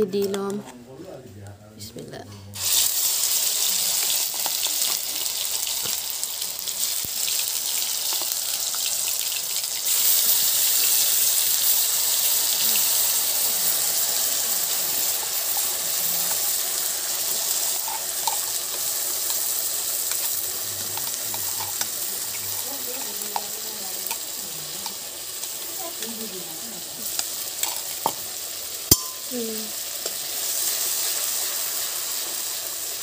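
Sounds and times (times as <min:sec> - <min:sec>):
paste sizzling in hot oil: 0:02.6 - 0:33.0
spoon clinks: 0:28.9 - 0:29.3.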